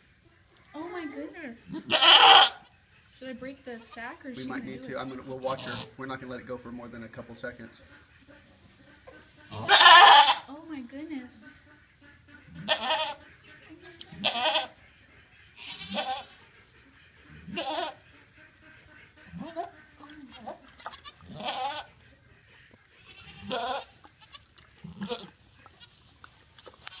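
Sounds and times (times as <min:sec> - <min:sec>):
goat bleating: 0:00.7 - 0:02.8, 0:03.6 - 0:06.0, 0:09.0 - 0:10.5, 0:12.4 - 0:13.3, 0:13.9 - 0:14.8, 0:15.6 - 0:16.5, 0:17.2 - 0:22.0, 0:22.6 - 0:26.0.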